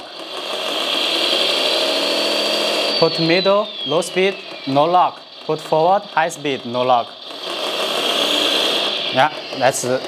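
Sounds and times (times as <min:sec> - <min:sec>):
electric motor whine: 0:00.0 - 0:10.0.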